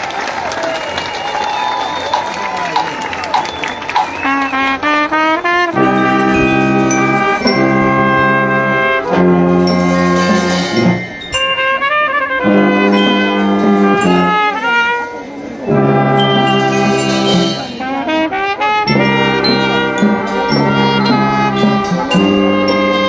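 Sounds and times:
marching band brass playing: 0:01.1 - 0:23.0.

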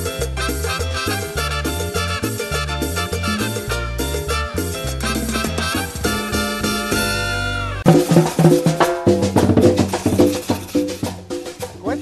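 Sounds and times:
salsa band playing: 0:00.0 - 0:12.0
brass chord sliding down: 0:00.6 - 0:07.9.

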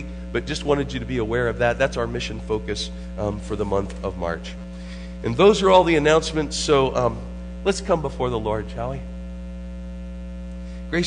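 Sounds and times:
man's voice: 0:00.0 - 0:04.6, 0:05.2 - 0:09.1
electrical mains hum: 0:00.0 - 0:11.0.

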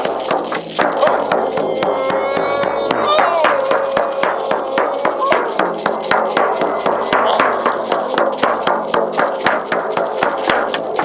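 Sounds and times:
frame drum beating fast: 0:00.0 - 0:11.0.

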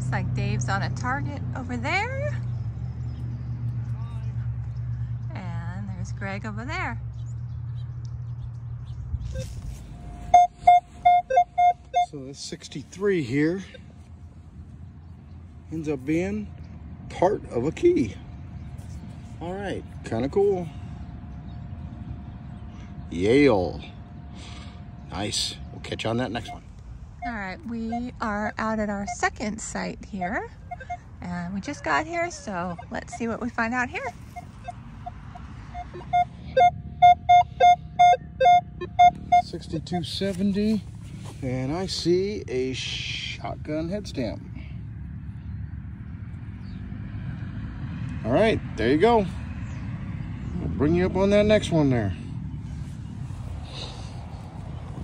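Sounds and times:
low steady rumble: 0:00.0 - 0:55.0
metal detector beeps: 0:09.3 - 0:12.4, 0:30.2 - 0:31.1, 0:32.7 - 0:33.6, 0:34.3 - 0:40.2.

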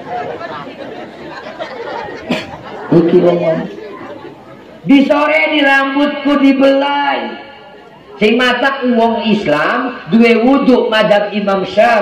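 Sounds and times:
audience chatter: 0:00.0 - 0:05.3, 0:07.1 - 0:08.4.

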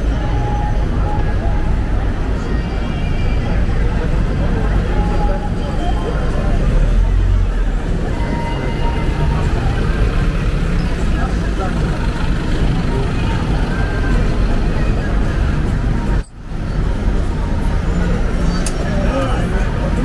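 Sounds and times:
cars passing: 0:00.0 - 0:20.0
low traffic rumble: 0:00.0 - 0:20.0.

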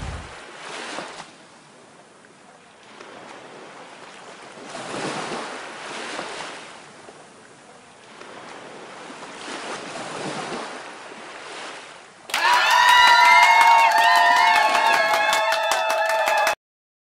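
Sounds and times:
soft rushing noise: 0:00.0 - 0:00.5.

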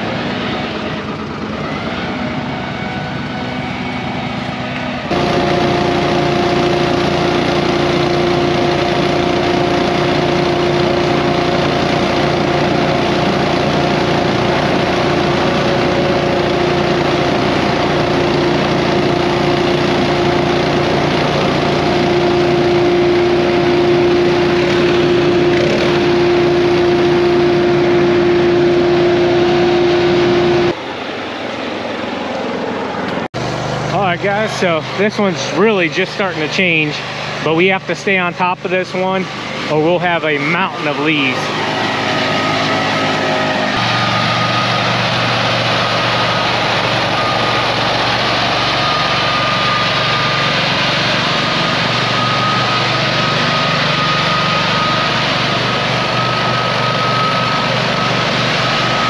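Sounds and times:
small gasoline engine whining: 0:00.0 - 0:59.0.

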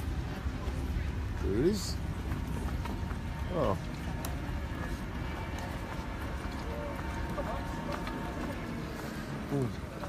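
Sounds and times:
land train engine rumbling: 0:00.0 - 0:10.0
tyres running on road: 0:00.0 - 0:10.0.

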